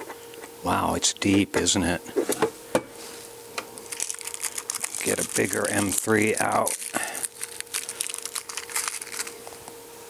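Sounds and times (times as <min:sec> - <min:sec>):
person muttering: 0:05.0 - 0:07.4.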